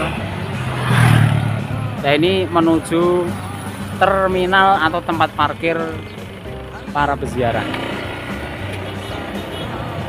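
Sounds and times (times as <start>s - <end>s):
road noise: 0.0s - 10.0s
small motorcycle engines: 3.4s - 9.8s.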